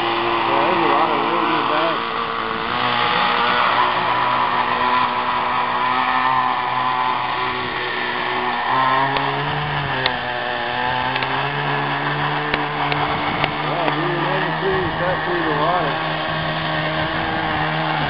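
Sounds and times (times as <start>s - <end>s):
model boat engine and propeller: 0.0s - 18.0s.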